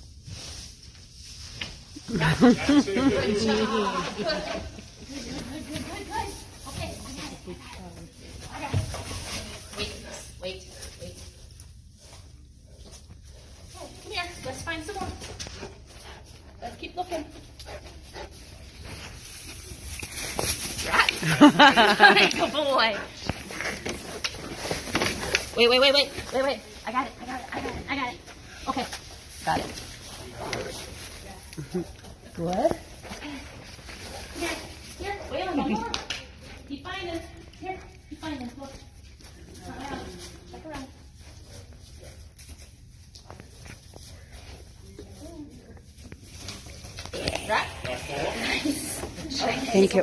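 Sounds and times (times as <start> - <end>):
dog sniffing: 17.4 - 19.6.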